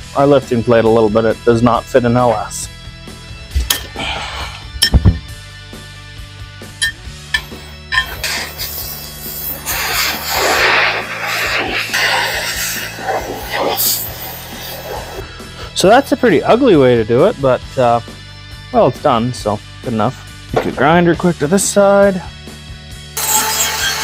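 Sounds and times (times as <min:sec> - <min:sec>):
background music: 0:00.0 - 0:24.0
metal clanks: 0:06.8 - 0:08.5
cutting torch hissing: 0:07.3 - 0:15.8.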